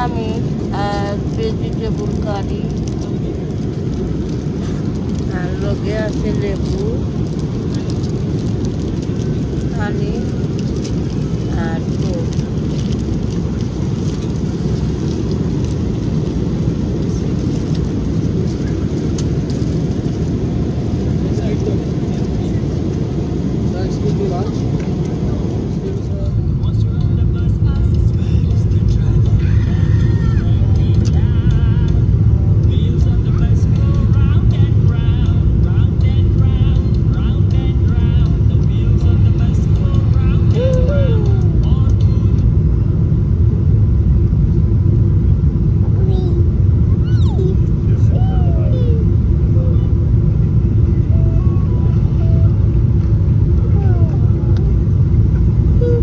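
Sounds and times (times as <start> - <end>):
airplane cabin rumble: 0.0 - 56.0
faint voices: 37.1 - 42.5, 45.5 - 56.0.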